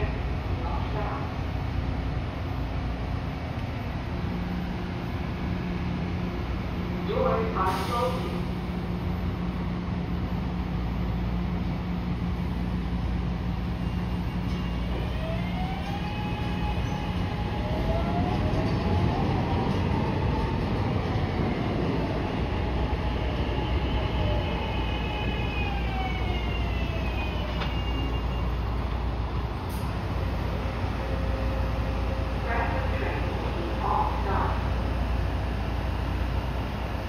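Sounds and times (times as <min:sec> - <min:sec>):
subway train rumble: 0:00.0 - 0:37.0.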